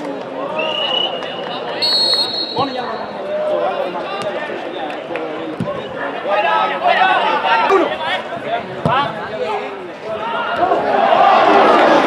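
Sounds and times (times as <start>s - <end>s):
people calling and talking: 0.0s - 12.0s.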